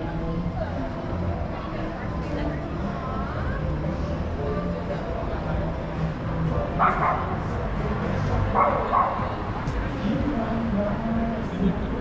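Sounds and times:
distant voices: 0.0s - 12.0s
street noise: 0.0s - 12.0s
dog barking: 6.8s - 7.3s, 8.6s - 9.3s.

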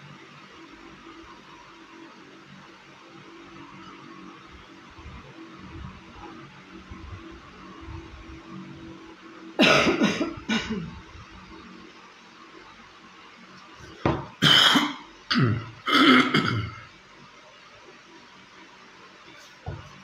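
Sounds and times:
faint room hum: 0.0s - 20.0s
woman coughing: 9.6s - 11.0s, 14.4s - 16.8s.

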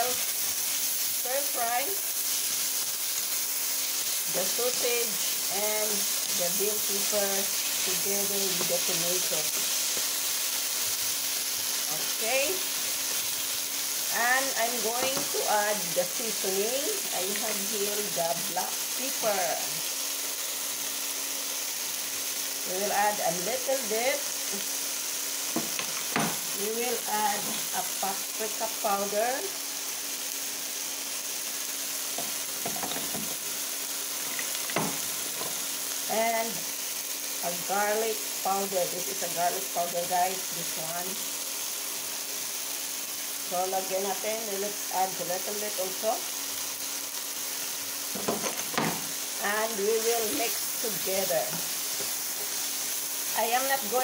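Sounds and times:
food sizzling in a frying pan: 0.0s - 54.0s.

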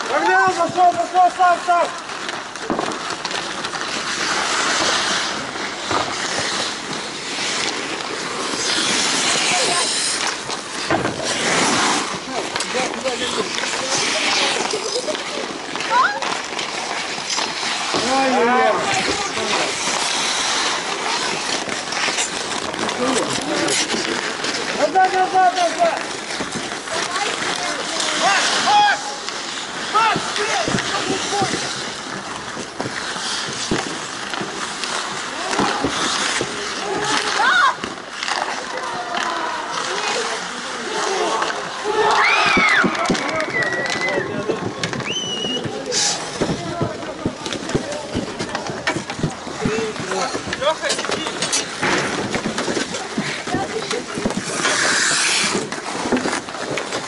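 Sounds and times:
hockey sticks and puck clacking: 0.0s - 57.0s
skates scraping on ice: 0.0s - 57.0s.

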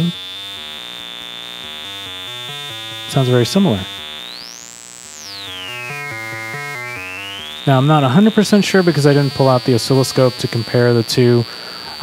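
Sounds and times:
stepped synthesizer notes: 0.0s - 10.5s
high-pitched whine: 0.0s - 12.0s.

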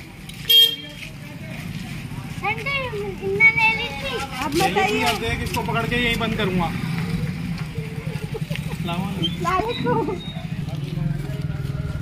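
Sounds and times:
low street rumble: 0.0s - 12.0s
vehicle horn toot: 0.5s - 1.0s.

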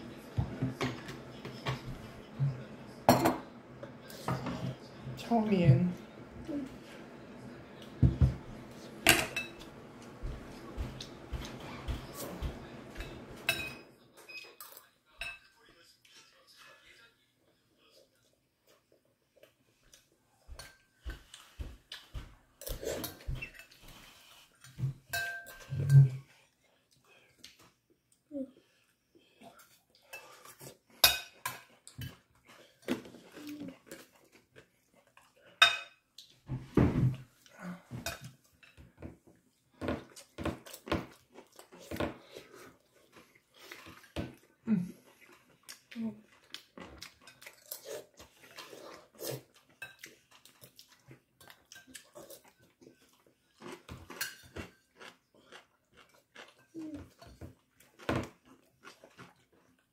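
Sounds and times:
cutlery clinking on ceramic plate: 3.1s - 3.5s, 9.0s - 15.5s, 24.7s - 26.2s, 35.6s - 36.0s, 53.8s - 54.9s.

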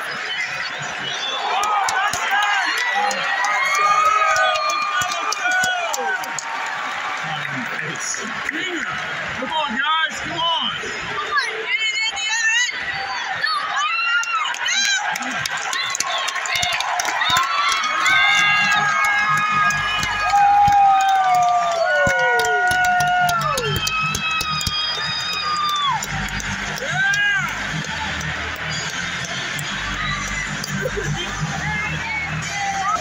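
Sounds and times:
crowd noise: 0.0s - 33.0s
music over sound system: 18.0s - 33.0s
pulsing bass beat: 21.9s - 33.0s.

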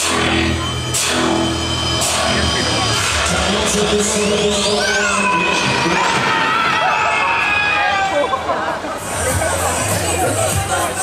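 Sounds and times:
electronic music with synth sweeps: 0.0s - 6.1s.

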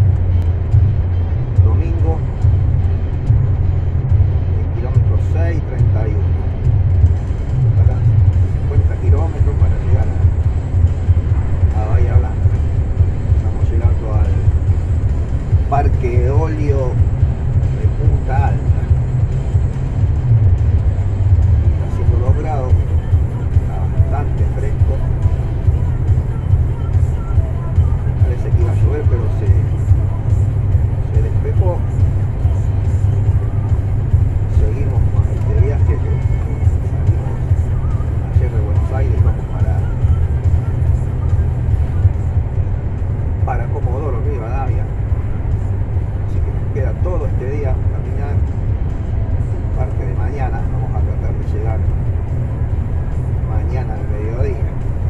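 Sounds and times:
truck engine drone: 0.0s - 55.0s
tyres on the road: 0.0s - 55.0s.

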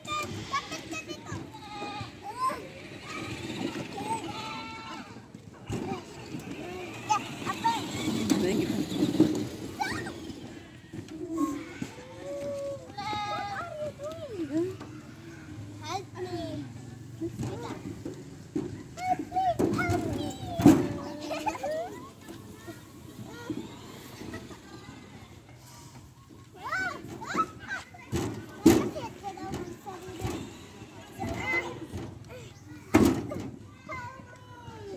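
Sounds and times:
young children babbling: 0.0s - 5.2s, 19.0s - 25.9s
goat bleating: 4.1s - 5.1s.

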